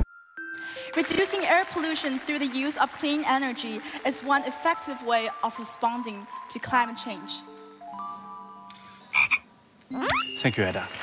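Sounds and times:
chime music: 0.0 - 2.2, 4.2 - 9.1, 9.9 - 11.0
comic croaking sound effect: 9.1 - 10.4.

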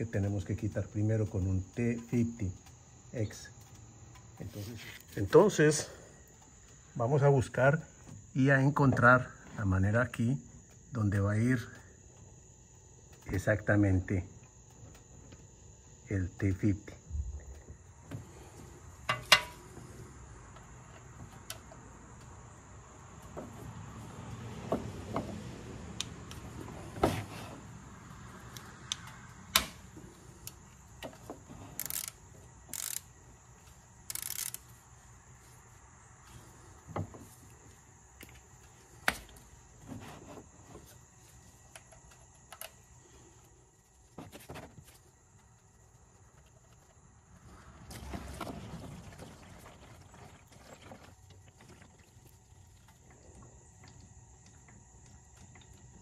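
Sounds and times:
insect chirring: 0.0 - 48.2, 48.8 - 56.0
bolt handled by hand: 30.4 - 33.1, 34.1 - 34.7
ratchet clicks and knocks: 31.7 - 33.1, 34.0 - 34.8.

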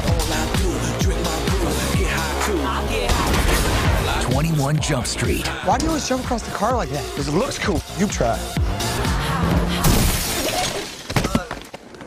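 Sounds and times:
music: 0.0 - 10.7
shattering crash: 3.1 - 4.2, 9.8 - 11.7.

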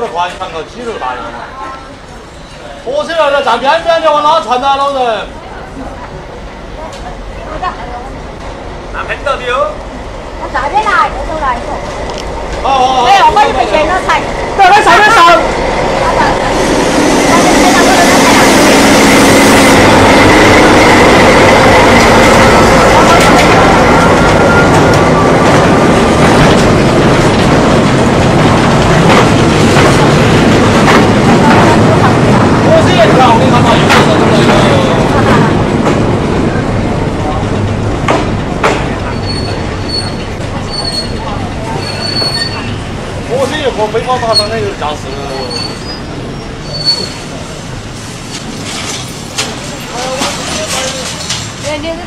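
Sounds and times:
freight train passing: 0.0 - 52.0
wheels clacking over rail joints: 19.7 - 52.0
thin wheel squeal: 39.1 - 42.8, 44.3 - 47.2.

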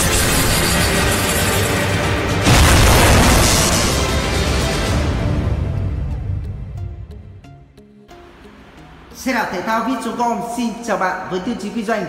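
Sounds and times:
intro theme music: 0.0 - 9.8
cinematic boom hit: 2.4 - 6.5.

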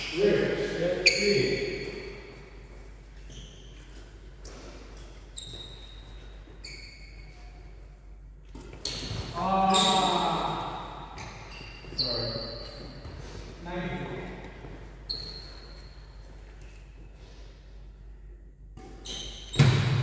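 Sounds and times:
shoes squeaking on court floor: 0.0 - 13.6, 14.3 - 17.2, 18.8 - 20.0.

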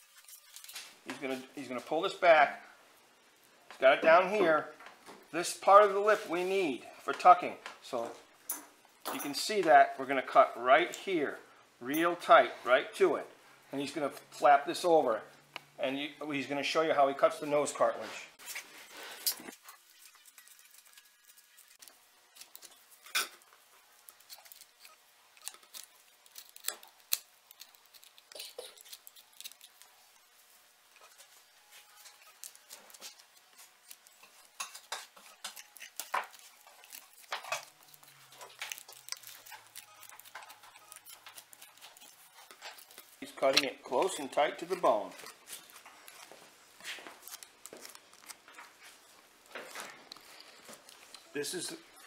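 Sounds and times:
knife scraping cartilage and bone: 24.1 - 29.9, 31.8 - 46.3.

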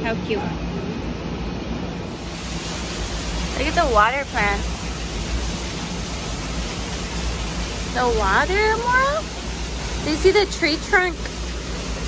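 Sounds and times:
waterfall rushing: 2.0 - 12.0.

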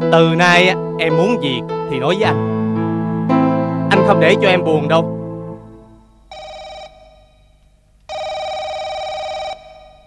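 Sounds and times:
electronic telephone ringer warbling: 6.3 - 10.0.

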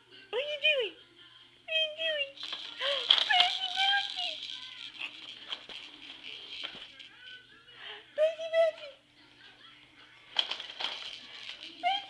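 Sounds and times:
baby jumper clicks: 2.4 - 7.4.

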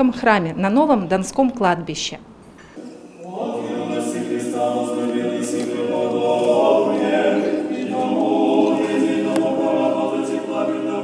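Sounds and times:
choir singing a cappella chant: 2.8 - 11.0.

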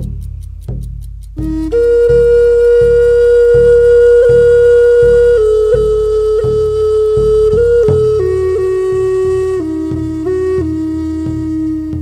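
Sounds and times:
slow drum beat: 0.0 - 12.0
flute holding long note: 1.4 - 12.0.

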